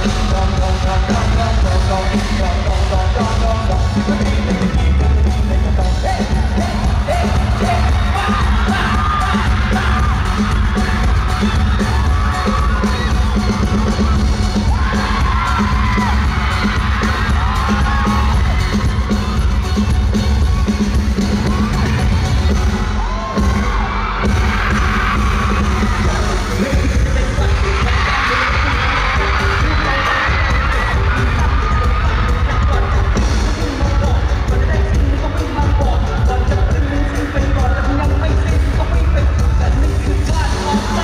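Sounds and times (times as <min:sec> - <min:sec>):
fans screaming and cheering: 0:00.0 - 0:41.0
live pop music with heavy bass: 0:00.0 - 0:41.0.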